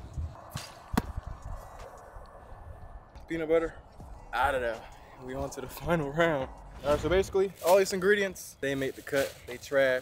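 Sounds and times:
ball smacking hands: 0.9s - 1.2s.

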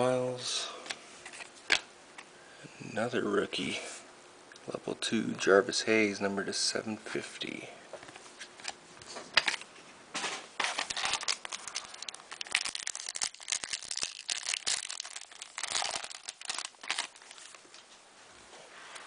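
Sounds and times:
foil wrapper tearing and crinkling: 10.6s - 17.7s.

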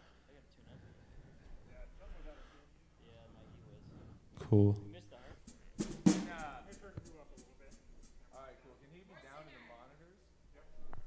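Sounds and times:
drum hits on drum kit: 5.4s - 8.1s.

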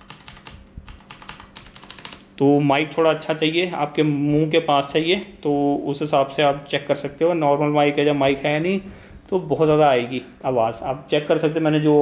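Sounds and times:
keyboard typing clicks: 0.0s - 2.2s.

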